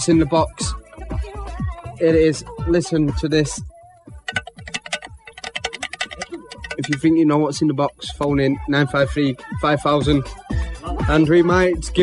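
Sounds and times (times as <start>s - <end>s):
sharp clicks and taps: 4.3s - 7.1s.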